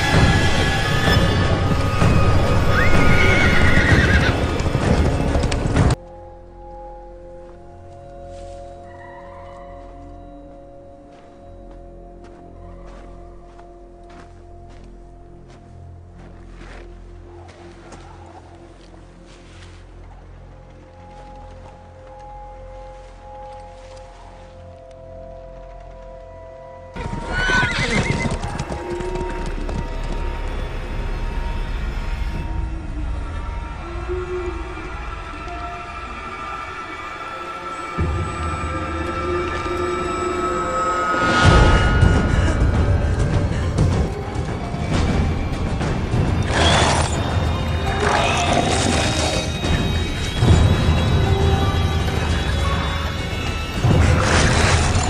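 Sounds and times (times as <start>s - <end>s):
horse whinnying: 2.7s - 4.6s, 27.0s - 28.4s
hoof clatter: 27.0s - 30.3s.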